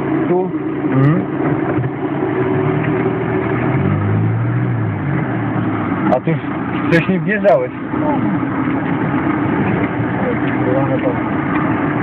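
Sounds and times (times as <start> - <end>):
car engine running: 0.0 - 12.0
rumbling road noise: 0.0 - 12.0.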